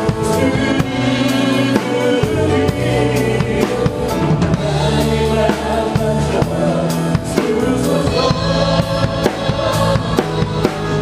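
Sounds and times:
bass guitar: 0.0 - 11.0
drum kit: 0.0 - 11.0.

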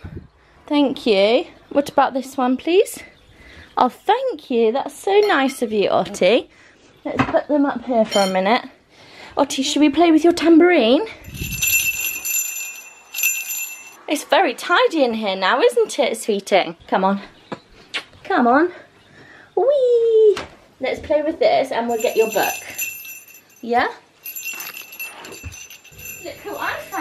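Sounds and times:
toy jingle bells shaken: 11.2 - 14.0, 21.9 - 27.0.

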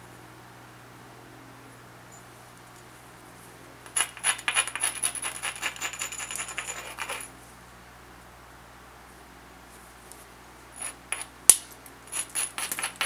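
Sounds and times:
stone scratching on blade edge: 3.9 - 7.3, 10.8 - 11.3, 12.1 - 13.0.

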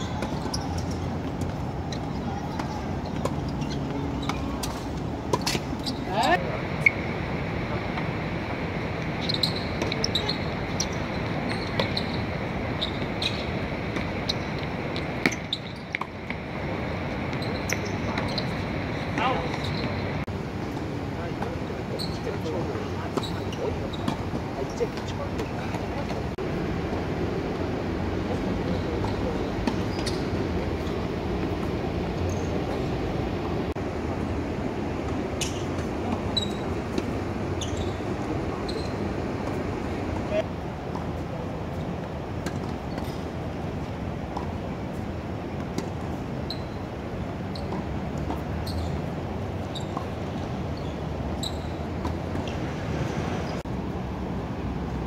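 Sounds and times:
shoe squeaks: 0.0 - 7.1, 9.1 - 16.2, 17.2 - 20.2, 21.9 - 26.1, 28.6 - 31.6, 32.2 - 33.0, 35.3 - 40.4, 42.5 - 43.3, 45.8 - 53.6
low city rumble: 0.0 - 55.0
urban background noise: 0.0 - 55.0.

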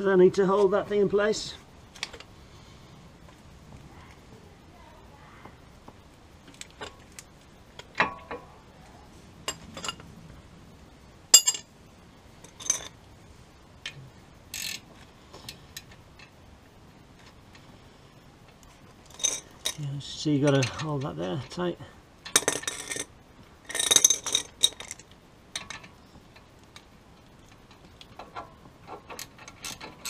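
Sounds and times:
metal tools clinking: 9.5 - 10.1, 11.4 - 11.7, 12.4 - 13.0, 14.5 - 14.9, 19.0 - 21.6, 22.2 - 26.5.

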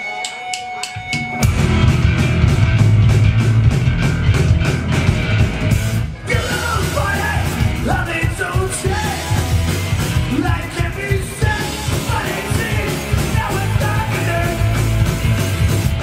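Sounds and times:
rock band playing: 0.0 - 16.0
drum stick clicks: 0.2 - 1.5.

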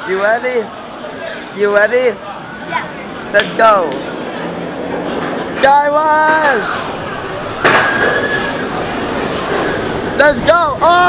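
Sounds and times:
roller coaster train rolling: 0.2 - 11.0.

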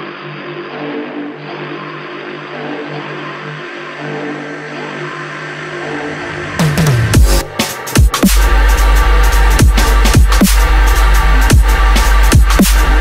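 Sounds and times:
mechanical drone with low hum: 0.0 - 13.0.

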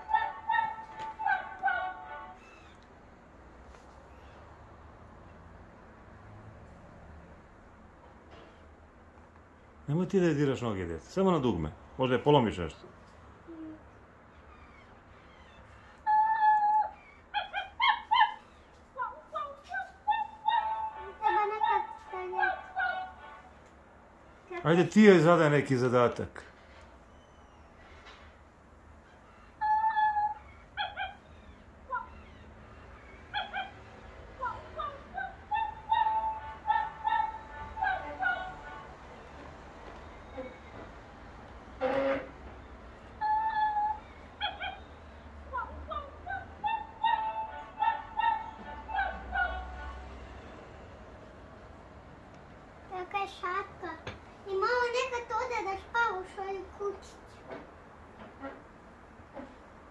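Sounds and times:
toy dog whining: 0.0 - 2.8, 14.4 - 23.2, 29.0 - 33.8, 34.4 - 38.8, 43.2 - 45.0, 45.6 - 49.7
toy dog yipping: 0.0 - 2.8, 14.4 - 23.2, 29.0 - 33.8, 34.4 - 38.6, 43.2 - 44.9, 45.5 - 49.6
electronic toy dog sounds: 14.6 - 23.3.

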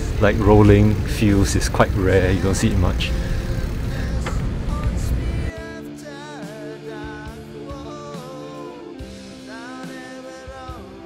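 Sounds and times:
road traffic: 0.0 - 5.6.

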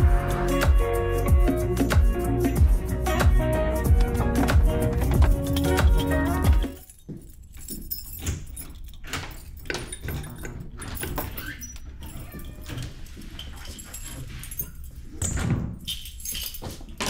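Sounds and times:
background music: 0.0 - 6.9
keys jangling and clicking: 0.8 - 17.0
front door opening: 3.1 - 17.0.

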